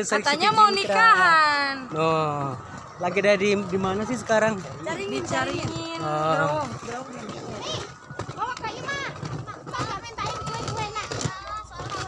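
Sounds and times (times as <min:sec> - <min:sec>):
group chatter and exclamations: 0:00.0 - 0:12.0.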